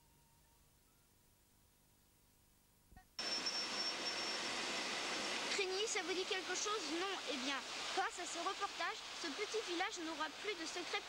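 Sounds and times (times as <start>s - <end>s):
thin high-pitched whine: 3.0s - 6.2s
rushing seaside noise: 3.2s - 11.0s
boy talking: 5.5s - 11.0s.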